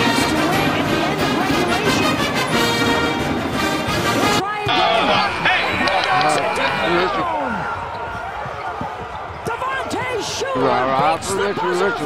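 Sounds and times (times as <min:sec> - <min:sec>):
voices: 0:04.6 - 0:08.0.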